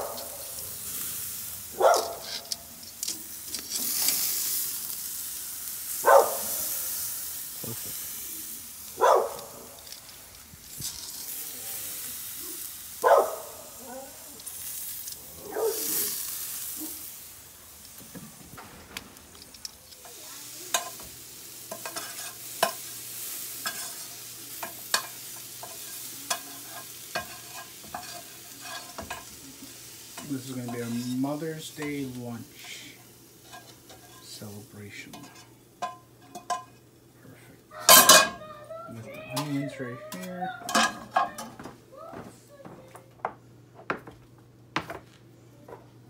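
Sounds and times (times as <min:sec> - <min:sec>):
tongs scraping grill grates: 0:00.0 - 0:37.0, 0:37.7 - 0:41.6
steaks sizzling on a grill: 0:00.0 - 0:42.7
tongs clicking and tapping: 0:24.6 - 0:29.2, 0:35.1 - 0:36.8.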